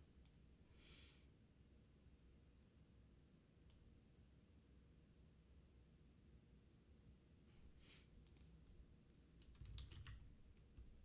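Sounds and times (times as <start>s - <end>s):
faint keyboard typing: 8.2s - 8.8s, 9.4s - 11.0s.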